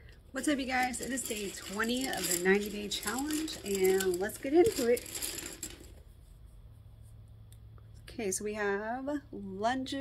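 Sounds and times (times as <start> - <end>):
handling and rustling noise: 0.4 - 7.2.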